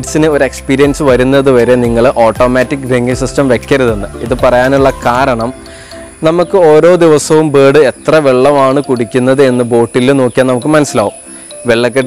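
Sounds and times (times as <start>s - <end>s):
man talking: 0.0s - 5.6s, 6.2s - 12.0s.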